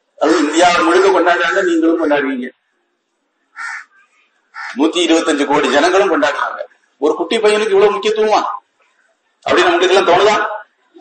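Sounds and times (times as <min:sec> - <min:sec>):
man speaking: 0:00.2 - 0:02.6, 0:04.7 - 0:08.7.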